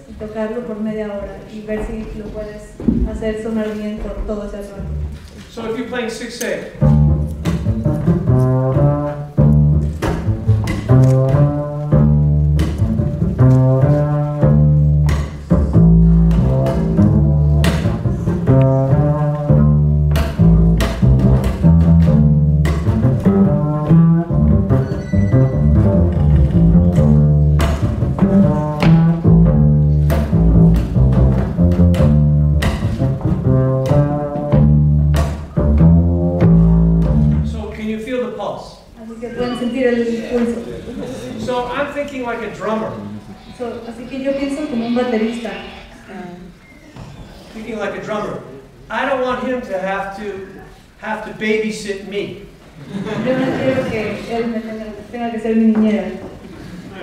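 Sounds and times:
double bass plucked pizzicato: 6.8s - 37.6s.

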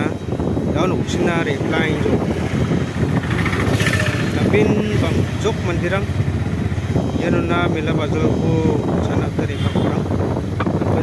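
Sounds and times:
passing vehicle engines: 0.0s - 11.0s
motorcycle approaching: 1.7s - 8.3s.

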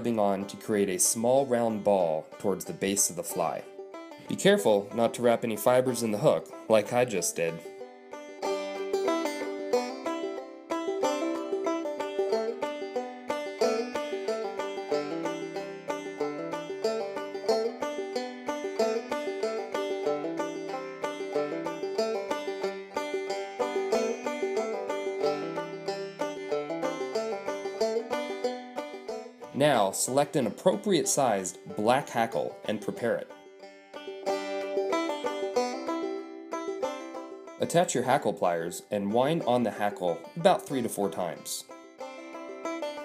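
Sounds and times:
fast-picked banjo tune: 0.0s - 43.0s.

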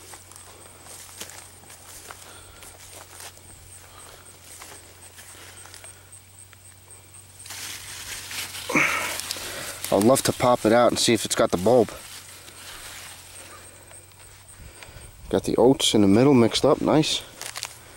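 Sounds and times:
soft footsteps: 0.0s - 5.9s, 7.4s - 14.9s
rustling and crackling of leaves: 0.0s - 15.1s, 16.0s - 17.9s
leaves brushing: 7.4s - 15.0s, 16.0s - 17.9s.

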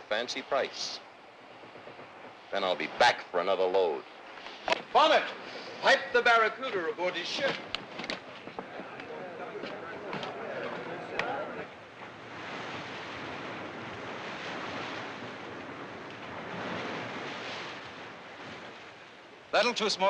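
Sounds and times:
sea water rushing along hull: 0.0s - 20.0s
faint murmuring voices: 8.3s - 11.9s.

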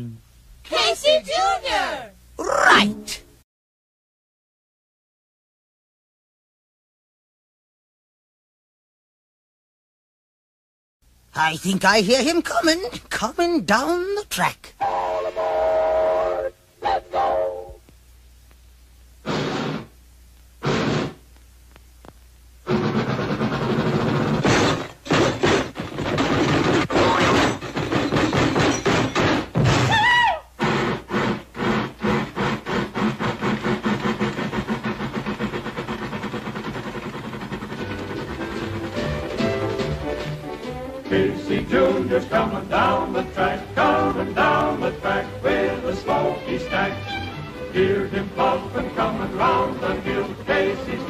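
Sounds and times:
sliding whistle: 14.8s - 17.8s
train whistle: 14.8s - 17.8s
steam puffs: 19.2s - 20.0s, 20.6s - 21.2s, 30.6s - 39.6s
fast even train chugging: 30.6s - 40.4s
orchestral music: 37.9s - 51.0s.

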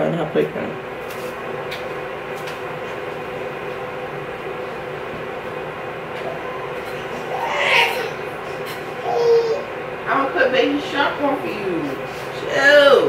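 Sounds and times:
mechanical hum with hiss: 0.0s - 13.0s.

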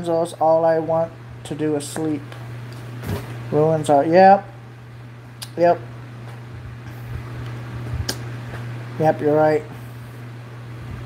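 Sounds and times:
faint low rumbling: 0.0s - 11.0s
steady low hum: 0.0s - 11.0s.

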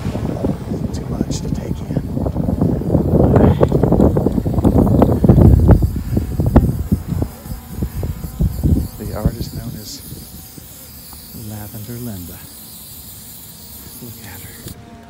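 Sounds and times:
wind buffeting microphone: 0.0s - 14.8s
aerosol spray can hiss: 2.4s - 14.8s.

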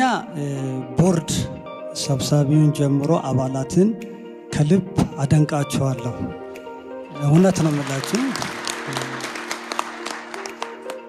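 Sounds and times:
background music: 0.0s - 11.0s
man's voice: 0.4s - 6.4s, 7.1s - 8.5s
audience applauding: 7.2s - 11.0s.

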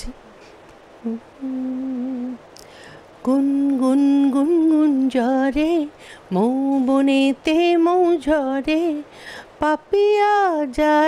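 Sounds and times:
woman humming: 1.0s - 2.4s.

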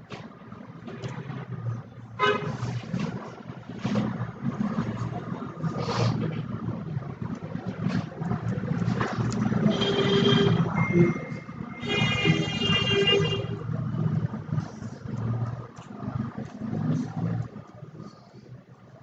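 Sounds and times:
traffic noise: 0.0s - 19.0s
long horn blasts: 11.7s - 13.6s.

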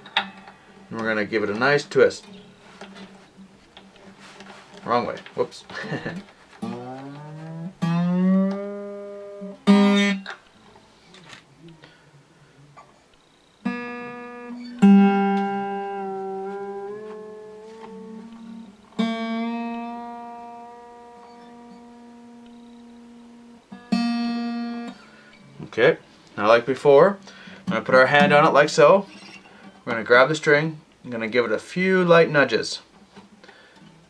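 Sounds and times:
acoustic guitar string plucked: 0.0s - 10.5s, 13.6s - 25.5s.

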